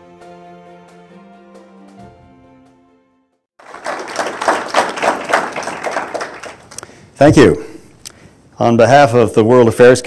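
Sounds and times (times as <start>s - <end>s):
audience applauding: 3.6s - 6.8s.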